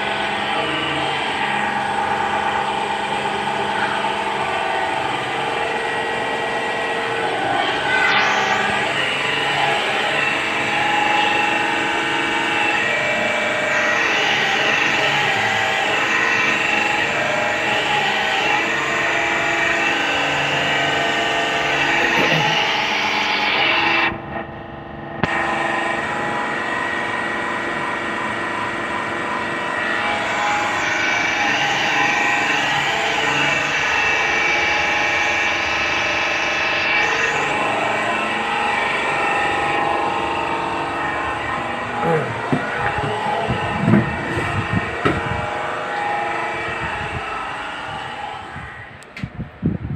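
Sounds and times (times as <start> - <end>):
pressure washer running: 0.0 - 24.1, 25.2 - 49.0.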